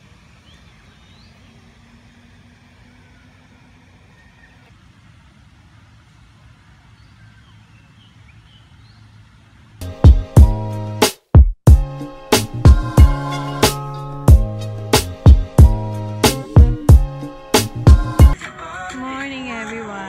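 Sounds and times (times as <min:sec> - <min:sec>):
distant city traffic rumble: 0:00.0 - 0:11.0
faint bird chirps: 0:00.3 - 0:01.8, 0:02.8 - 0:04.7
loud music: 0:09.8 - 0:19.1.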